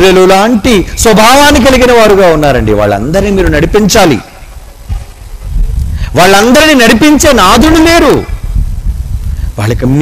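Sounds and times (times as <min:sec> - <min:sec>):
man preaching amplified: 0:00.0 - 0:04.4, 0:06.1 - 0:08.4
low background rumble: 0:00.0 - 0:10.0.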